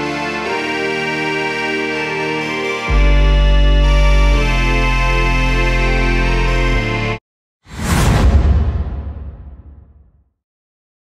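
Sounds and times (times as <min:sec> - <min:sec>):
background music: 0:00.0 - 0:07.2
whoosh with deep rumble: 0:07.7 - 0:10.2.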